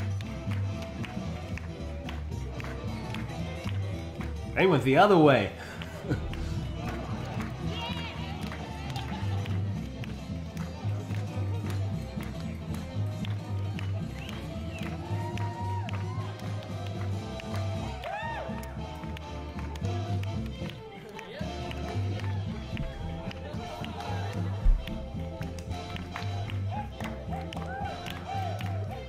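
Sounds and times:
up-tempo swing song: 0.0 - 29.0.

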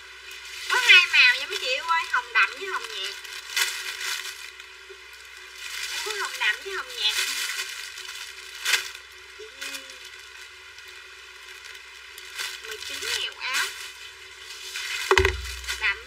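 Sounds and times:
plastic packaging rustling: 0.3 - 16.0.

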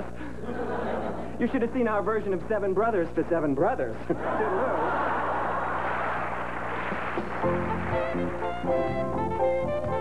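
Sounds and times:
audience laughing and applauding: 4.2 - 8.6.

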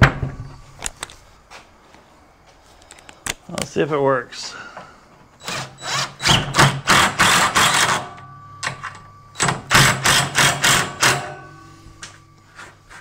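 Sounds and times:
cordless drill driving screw: 5.4 - 8.0
faint metallic ring: 11.1 - 13.0.

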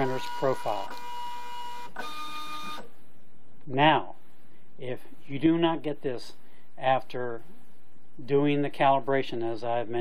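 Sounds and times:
label printer motor whine: 0.0 - 2.9.

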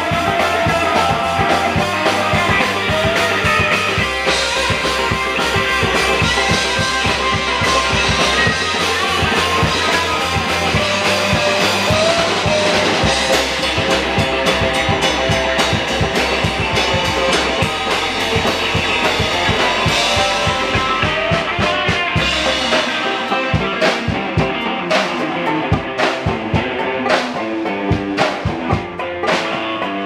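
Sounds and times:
blues-rock band playing: 0.0 - 30.0
upright bass: 0.0 - 30.0.

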